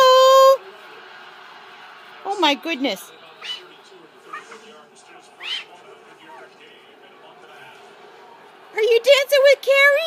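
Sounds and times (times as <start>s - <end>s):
cockatoo squawking: 3.4s - 3.7s, 4.3s - 4.6s, 5.4s - 5.8s.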